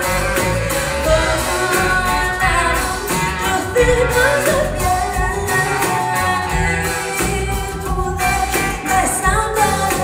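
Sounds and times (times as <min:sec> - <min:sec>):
live band playing: 0:00.0 - 0:10.0
woman singing into a microphone: 0:01.0 - 0:10.0.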